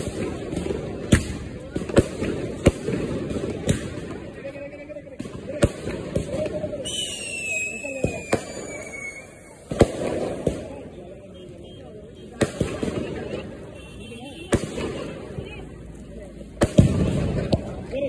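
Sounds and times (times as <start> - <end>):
fireworks bangs: 0.0 - 18.0
high falling whistle: 6.9 - 9.6.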